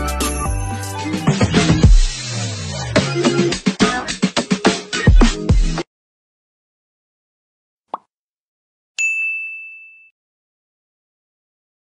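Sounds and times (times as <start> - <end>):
notification bell ding: 9.0 - 10.1.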